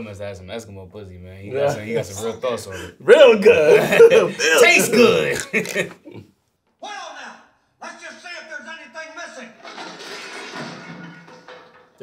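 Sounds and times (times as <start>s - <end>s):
metal lid crashing open: 9.6s - 12.0s.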